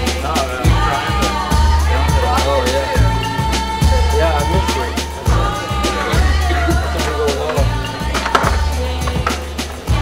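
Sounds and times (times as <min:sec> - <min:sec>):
music with bass and drums: 0:00.0 - 0:10.0.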